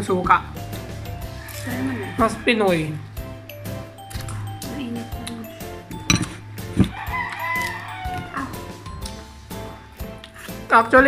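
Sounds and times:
faint background music: 0.0s - 11.0s
rooster crowing: 1.3s - 3.2s, 6.8s - 8.8s.

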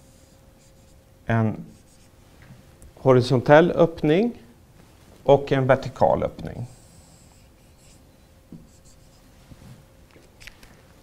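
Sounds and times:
low room hum: 0.0s - 11.0s
marker on whiteboard: 1.7s - 2.1s.

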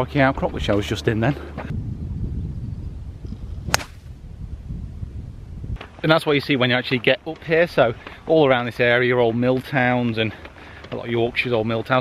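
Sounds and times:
golf club striking ball: 3.7s - 4.1s.

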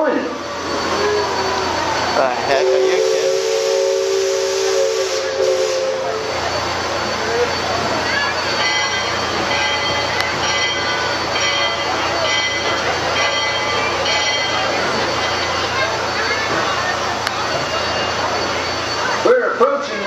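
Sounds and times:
steam whistle chord: 0.7s - 7.6s.

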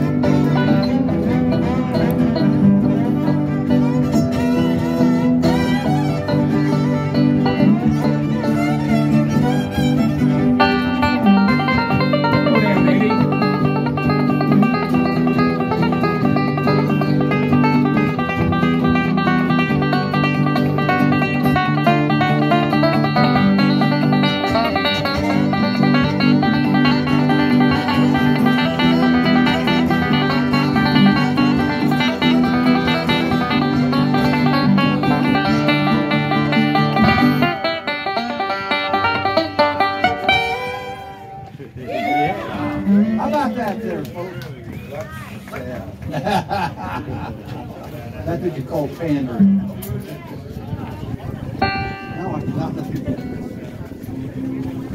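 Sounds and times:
fiddles playing: 0.0s - 43.7s, 51.6s - 54.9s
fast picked banjo: 0.0s - 44.9s, 45.8s - 54.9s.

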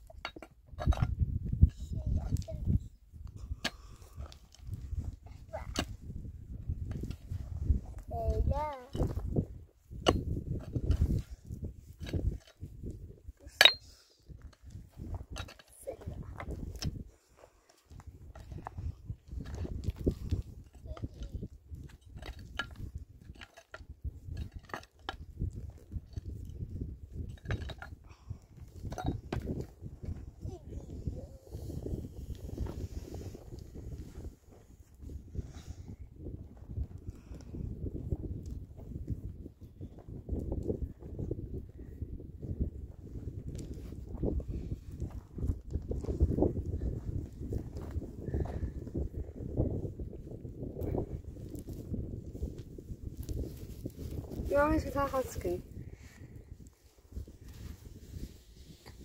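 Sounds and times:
pick-mattock striking stony soil: 9.9s - 11.2s
hands scraping dry earth: 51.0s - 55.6s, 56.2s - 59.0s.

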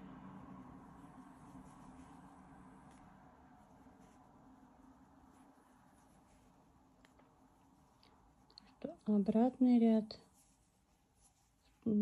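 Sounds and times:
faint rustling of yarn: 0.0s - 12.0s.

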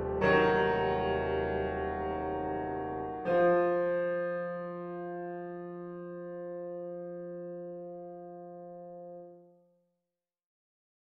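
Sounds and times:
piano chord ringing: 0.0s - 9.3s.

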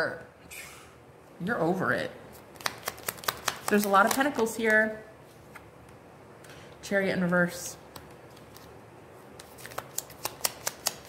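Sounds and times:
cards being shuffled: 2.3s - 4.8s, 7.9s - 11.0s.

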